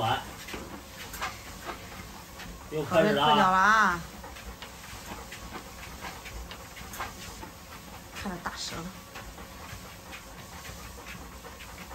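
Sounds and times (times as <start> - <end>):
dog panting: 0.0 - 11.9
treadmill hum: 0.0 - 11.9.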